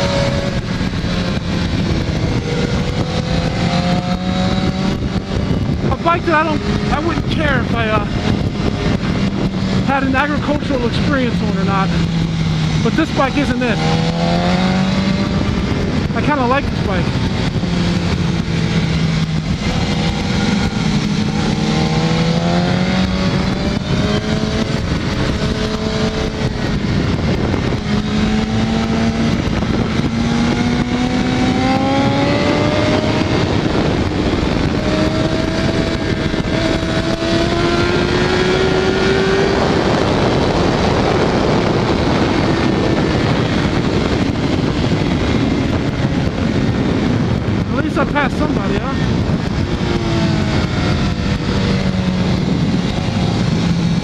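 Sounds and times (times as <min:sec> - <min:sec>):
motorcycle engine accelerating: 0:00.0 - 0:54.0
wind rushing: 0:00.0 - 0:54.0.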